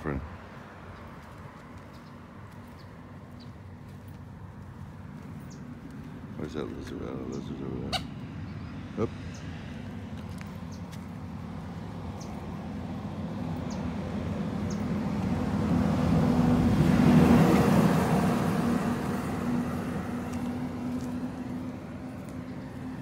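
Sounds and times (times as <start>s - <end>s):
vehicle engine passing by: 0.0s - 23.0s.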